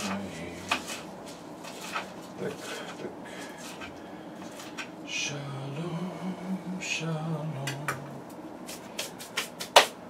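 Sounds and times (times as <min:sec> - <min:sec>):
person mumbling: 0:02.4 - 0:03.3.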